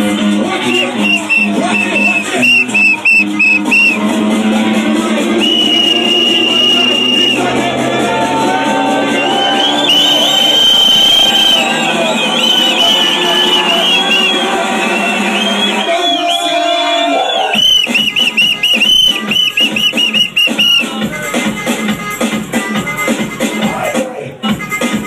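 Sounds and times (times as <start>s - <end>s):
bass-heavy club music: 0.0s - 25.0s
high whistle-like note: 0.7s - 4.0s, 5.4s - 7.5s, 9.2s - 16.5s, 17.2s - 20.9s.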